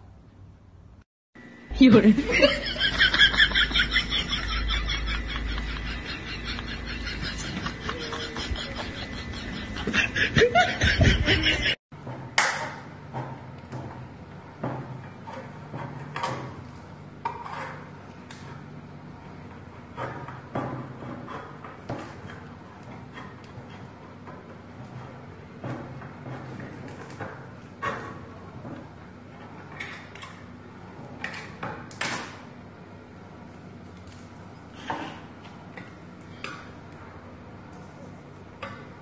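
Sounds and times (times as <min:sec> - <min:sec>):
person speaking: 0:01.7 - 0:02.6
laughter: 0:02.1 - 0:11.8.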